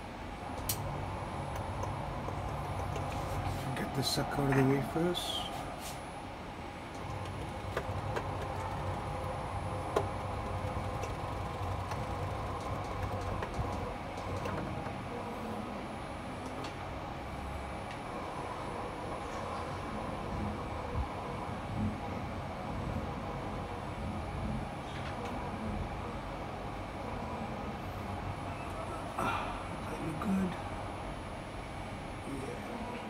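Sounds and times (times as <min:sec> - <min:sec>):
milling machine humming: 0:00.1 - 0:33.0.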